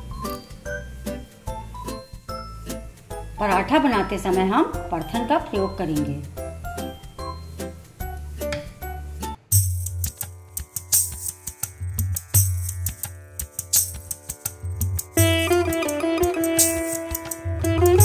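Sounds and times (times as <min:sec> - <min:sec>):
music with steady beat and bass: 0:00.0 - 0:18.0
plucked-string melody: 0:10.1 - 0:18.0
held melody line: 0:15.2 - 0:18.0.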